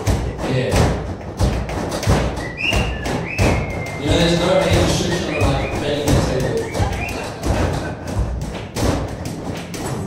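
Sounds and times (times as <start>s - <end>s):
percussive acoustic guitar thumps: 0.0s - 9.5s.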